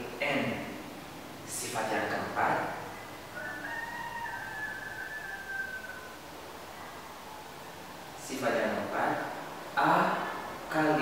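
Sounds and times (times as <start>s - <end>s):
low background hiss: 0.0s - 11.0s.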